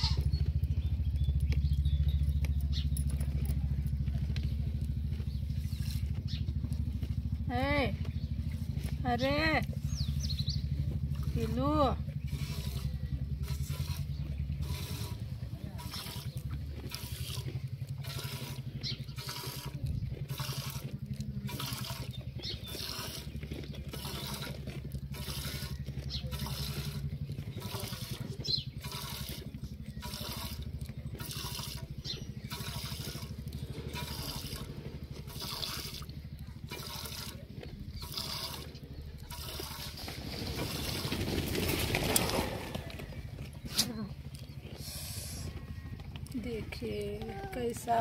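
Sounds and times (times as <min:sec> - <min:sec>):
low hum: 0:00.0 - 0:48.0
milk squirting into metal pot: 0:35.3 - 0:37.4, 0:38.0 - 0:41.0.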